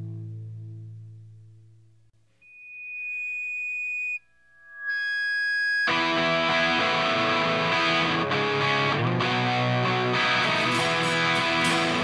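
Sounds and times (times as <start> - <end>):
held high tones: 2.4 - 6.9
punk rock band with distorted guitars: 6.2 - 12.0.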